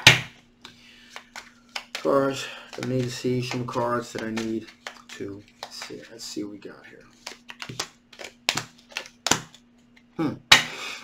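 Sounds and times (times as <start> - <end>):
cards sliding rustle: 0.6 - 6.4, 7.0 - 9.6
cards snapping on a table: 1.2 - 2.1, 2.7 - 6.0, 7.2 - 9.6.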